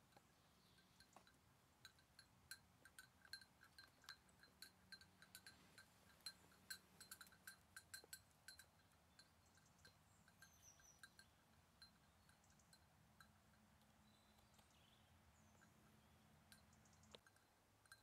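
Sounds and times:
goat bell clinking: 0.0 - 14.5, 15.4 - 18.0.

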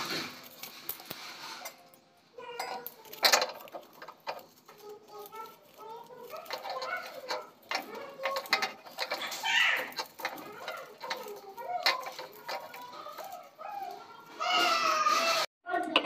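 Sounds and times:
paper and cardboard crinkling: 0.0 - 15.5.

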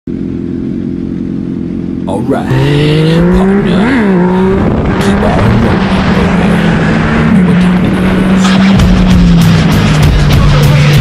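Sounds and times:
motorcycle engines idling: 0.1 - 2.4, 7.4 - 11.0.

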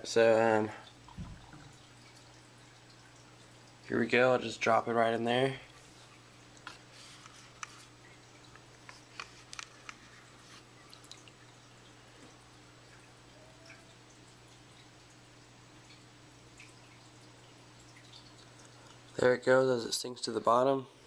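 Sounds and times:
fish tank hum: 0.0 - 21.0
water drips and clicks: 0.7 - 4.2, 6.1 - 19.3.

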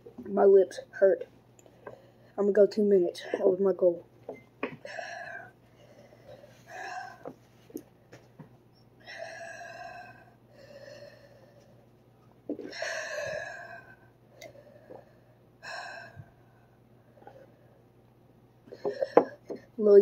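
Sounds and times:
person breathing heavily: 1.7 - 2.4, 4.8 - 7.4, 9.0 - 11.8, 12.6 - 17.8.

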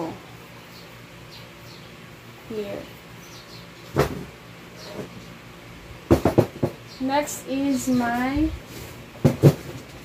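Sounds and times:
hard objects knocking and clattering: 6.1 - 6.8, 9.2 - 10.0.

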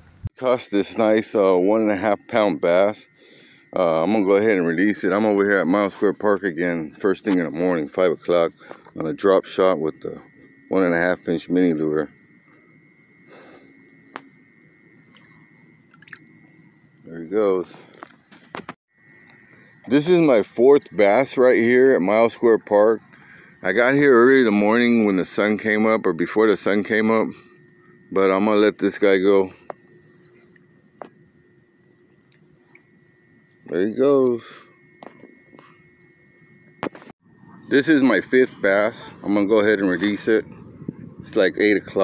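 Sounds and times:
faint steady high tone: 0.3 - 42.0
fish splashing into water: 15.9 - 16.3.

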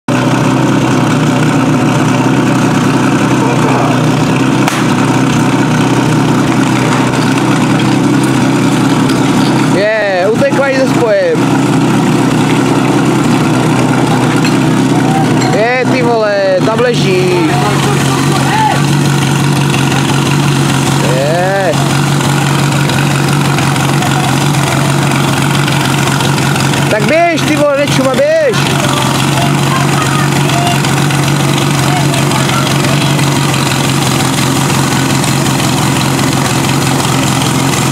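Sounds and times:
pump engine running: 0.0 - 37.9.

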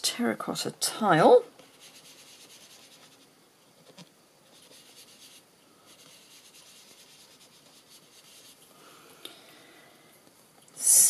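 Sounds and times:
brush rubbing over cardstock: 1.6 - 8.6.

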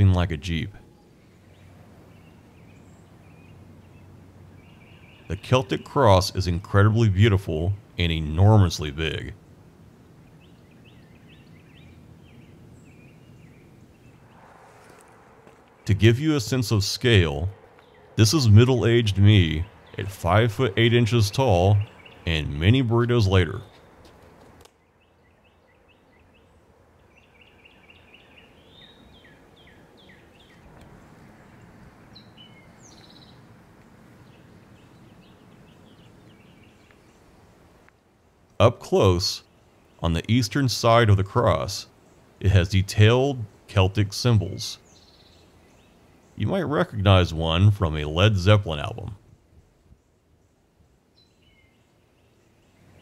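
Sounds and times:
outdoor background hiss: 0.0 - 53.0
songbirds chirping: 0.0 - 53.0
steady low rumble: 12.0 - 24.0
small bird chirping: 24.7 - 33.5, 44.8 - 46.4.

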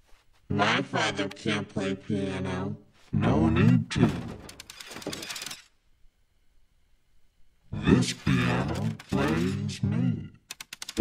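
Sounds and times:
metallic clicking and rattling: 4.4 - 5.7, 10.5 - 11.0.

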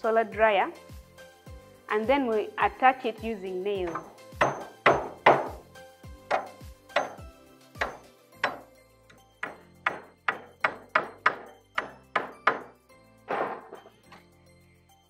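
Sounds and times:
hammer striking nails into wood: 3.9 - 8.7, 9.4 - 13.9.

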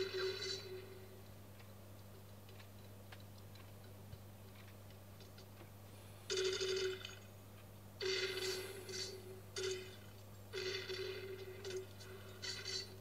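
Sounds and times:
telephone ringing: 0.0 - 1.0, 6.3 - 7.3, 8.0 - 13.0
steady low hum: 0.0 - 13.0.

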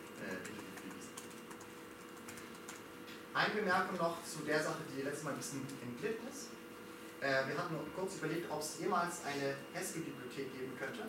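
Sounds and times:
faint keyboard typing: 0.0 - 3.2
low room hum: 0.0 - 11.0.

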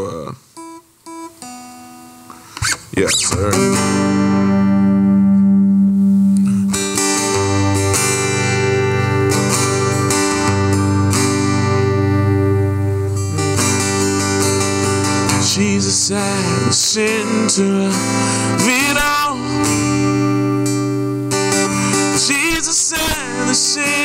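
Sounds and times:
acoustic guitar strumming chords: 0.6 - 24.0
person singing: 3.0 - 4.5, 6.3 - 20.8, 21.5 - 24.0.

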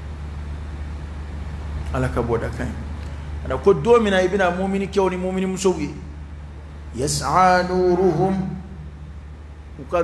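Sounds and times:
steady low hum: 0.0 - 10.0
man talking: 1.9 - 6.1, 6.9 - 8.7.

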